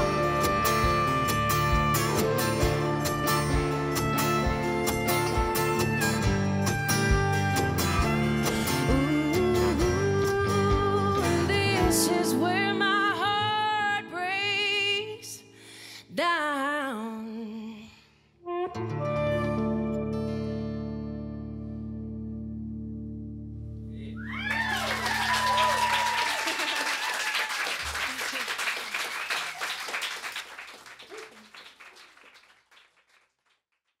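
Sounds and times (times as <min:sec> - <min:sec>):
audience applause and whoops: 0:24.1 - 0:32.8.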